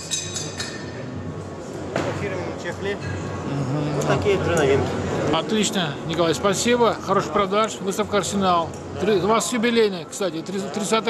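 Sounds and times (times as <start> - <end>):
background chatter: 0.4 - 11.0.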